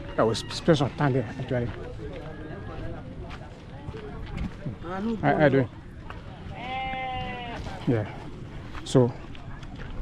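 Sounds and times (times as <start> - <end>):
animal bleating: 6.5 - 7.7.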